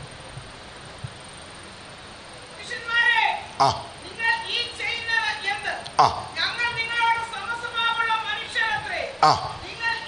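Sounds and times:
faint steady hiss: 0:00.0 - 0:10.0
person speaking: 0:02.6 - 0:10.0.

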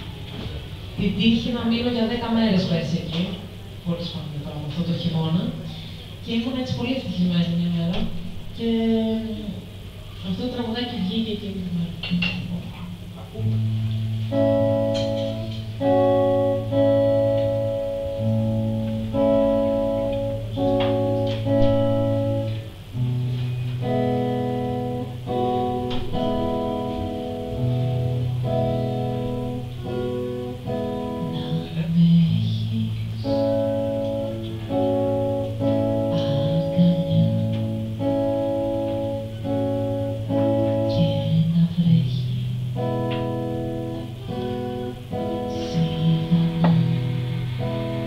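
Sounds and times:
low bass line: 0:13.4 - 0:41.6.

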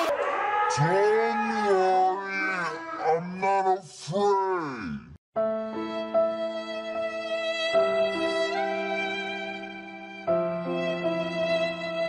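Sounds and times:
young man calling out: 0:00.7 - 0:05.2.

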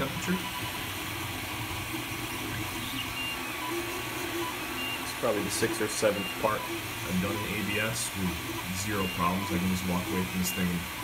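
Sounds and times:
fan humming: 0:00.0 - 0:11.0
stepper motor tones: 0:00.0 - 0:11.0.

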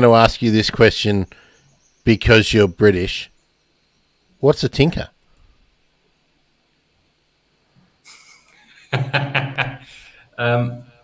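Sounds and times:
man laughing: 0:08.0 - 0:10.2
breathy exhale: 0:09.9 - 0:10.4.

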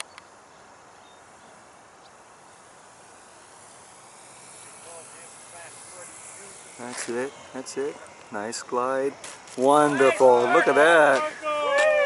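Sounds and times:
model airplane whine and air rush: 0:00.0 - 0:12.0.

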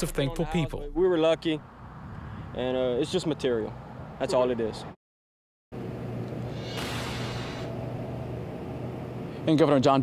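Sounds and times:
outdoor background noise: 0:00.0 - 0:05.0, 0:05.7 - 0:10.0
hiss: 0:06.4 - 0:07.8.

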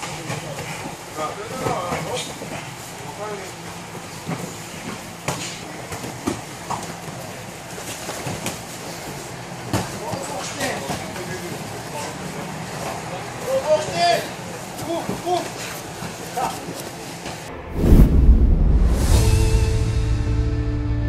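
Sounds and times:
bodies hitting gym mats: 0:04.0 - 0:11.8.

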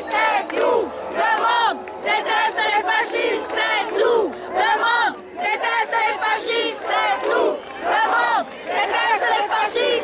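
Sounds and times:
crowd chanting a slogan: 0:00.0 - 0:10.0.

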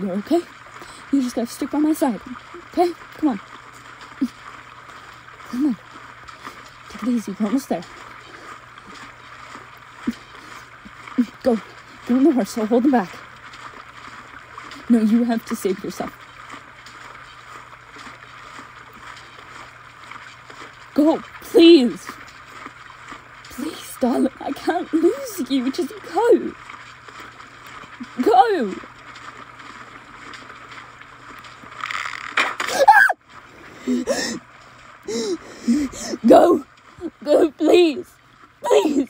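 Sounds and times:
woman gasping and crying out: 0:33.8 - 0:34.4.

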